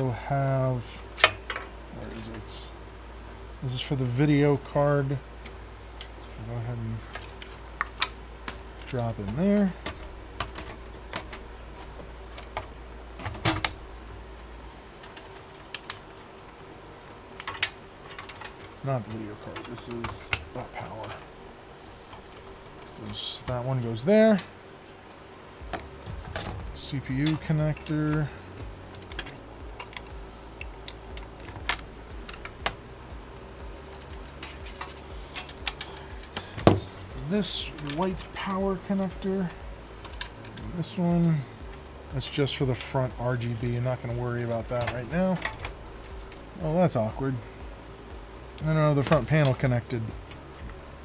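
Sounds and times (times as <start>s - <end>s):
computer hardware clicking and knocking: 12.4s - 13.8s, 25.6s - 32.9s, 34.1s - 37.0s, 44.6s - 45.8s
cables and connectors clicking: 15.0s - 16.3s, 17.3s - 21.4s, 25.7s - 33.0s, 33.8s - 42.5s, 43.6s - 46.6s, 48.5s - 51.0s.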